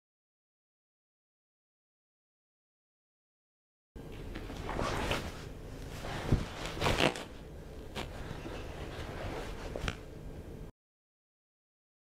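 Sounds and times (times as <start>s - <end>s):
clothing rustle: 4.1s - 10.1s.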